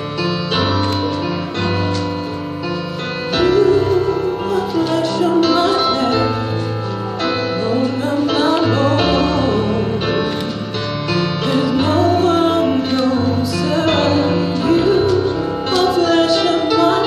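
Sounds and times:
instrumental accompaniment: 0.0s - 17.0s
woman singing slow song: 3.3s - 6.7s, 7.5s - 10.6s, 11.4s - 17.0s.

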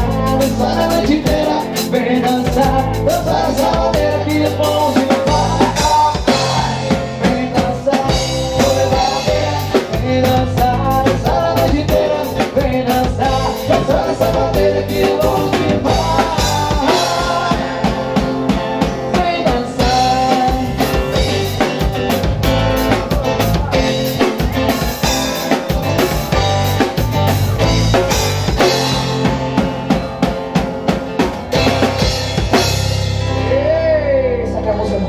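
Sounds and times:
drum kit beat: 0.0s - 33.7s
electric and acoustic guitars: 0.0s - 35.0s.

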